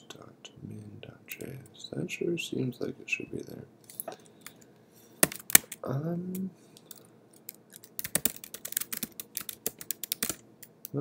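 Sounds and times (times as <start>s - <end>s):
keyboard keystrokes: 6.9s - 11.0s.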